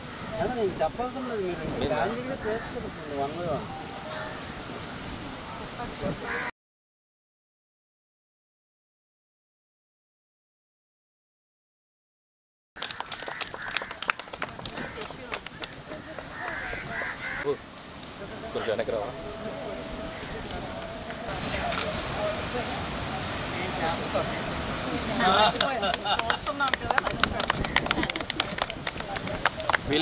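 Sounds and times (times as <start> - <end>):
voices talking and calling out: 0.0 - 6.5, 13.2 - 30.0
people clapping irregularly: 12.8 - 17.2, 25.3 - 30.0
low chatter: 13.8 - 30.0.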